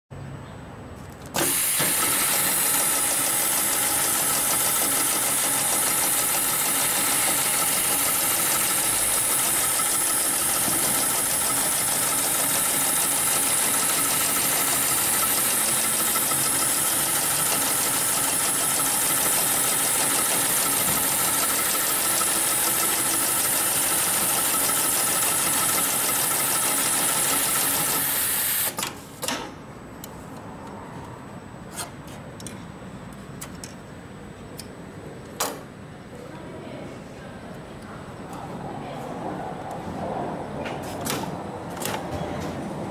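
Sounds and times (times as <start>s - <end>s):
sewing machine running: 1.4s - 28.8s.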